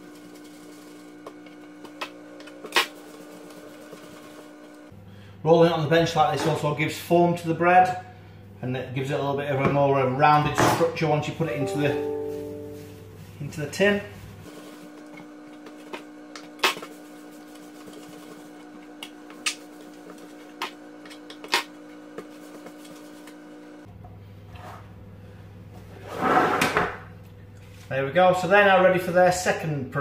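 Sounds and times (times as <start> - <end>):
baking trays scraping on worktop: 25.9 - 27.0.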